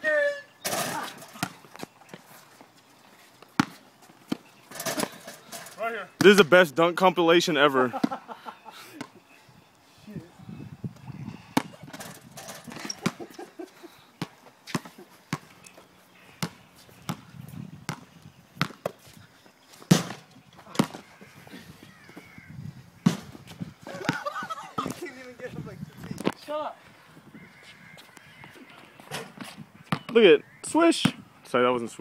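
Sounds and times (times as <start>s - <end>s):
basketball bouncing on concrete: 1.2s - 1.8s, 3.6s - 4.4s, 11.5s - 13.2s, 16.4s - 19.0s, 19.9s - 21.1s, 29.4s - 30.2s.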